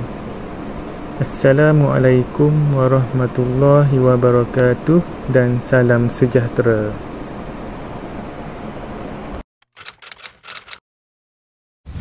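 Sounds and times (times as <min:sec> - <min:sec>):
short clicks: 0:09.6 - 0:10.8.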